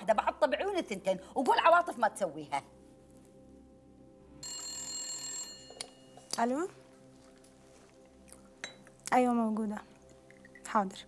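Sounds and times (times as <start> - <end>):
electronic telephone ringing: 4.4 - 6.2.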